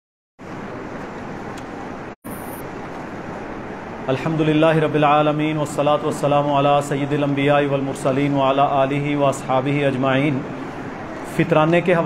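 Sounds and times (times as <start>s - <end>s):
microphone hum and hiss: 0.4s - 12.0s.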